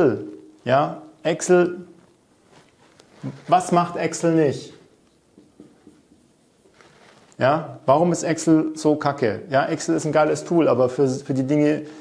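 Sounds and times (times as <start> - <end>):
marker writing on whiteboard: 5.1 - 6.5.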